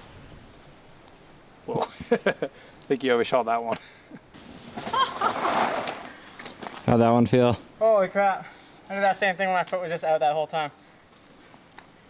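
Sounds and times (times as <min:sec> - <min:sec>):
bike tyres skidding on dirt: 0:04.4 - 0:06.9.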